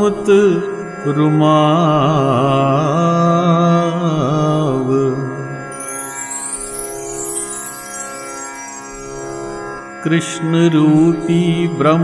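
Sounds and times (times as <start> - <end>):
man singing devotional song: 0.0 - 6.1
bright chime: 5.7 - 10.3.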